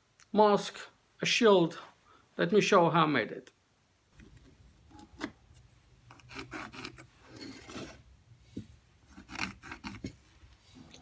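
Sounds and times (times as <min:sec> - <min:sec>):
scratching and rubbing on wood: 0:06.1 - 0:08.0, 0:09.0 - 0:11.0.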